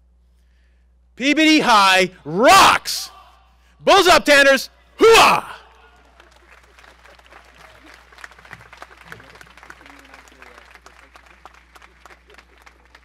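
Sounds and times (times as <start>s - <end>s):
steady low hum: 0.0s - 13.0s
audience applauding: 5.8s - 13.0s.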